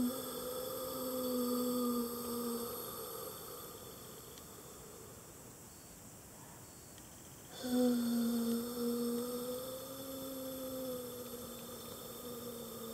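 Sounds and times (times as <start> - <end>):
low humming tone with overtones: 0.0 - 12.9.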